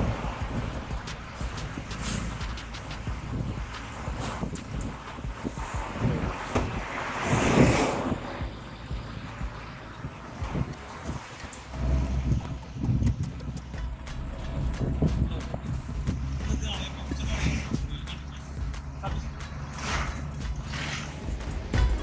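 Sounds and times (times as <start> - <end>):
low road rumble: 0.0 - 22.0
wind rushing over microphone: 0.0 - 22.0.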